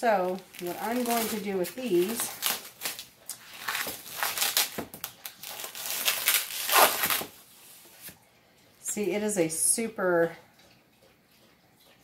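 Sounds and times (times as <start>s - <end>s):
plastic wrap crinkling: 0.0s - 8.2s.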